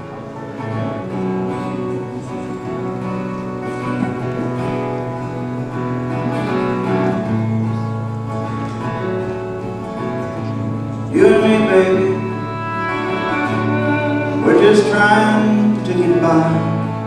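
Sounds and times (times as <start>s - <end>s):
acoustic guitar strumming: 0.0s - 17.0s
fiddle: 0.0s - 17.0s
mandolin: 0.0s - 17.0s.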